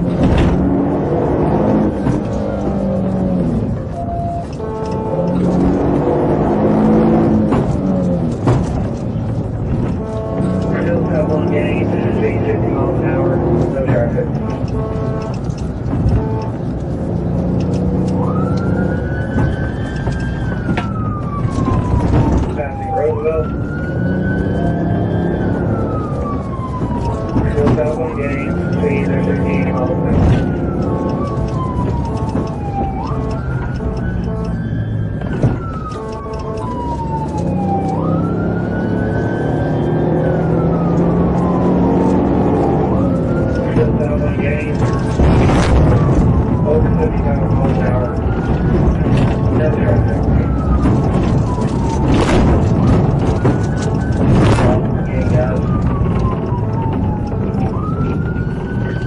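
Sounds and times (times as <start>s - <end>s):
car engine and road noise: 0.0s - 59.0s
police siren wailing: 0.0s - 59.0s.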